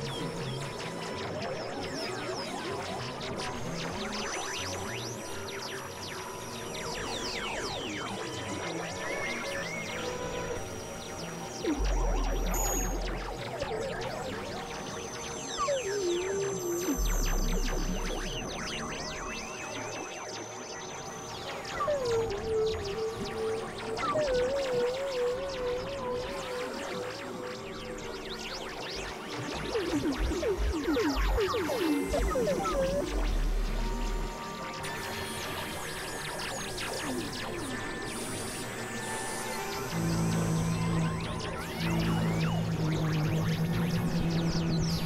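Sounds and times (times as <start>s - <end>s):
electronic synthesizer drone music: 6.0s - 45.0s
warbling synth tone: 15.7s - 19.5s, 29.6s - 34.7s.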